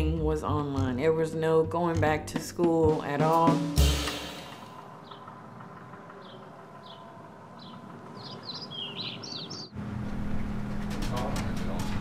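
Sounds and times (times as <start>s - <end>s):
small birds chirping: 4.5s - 9.8s.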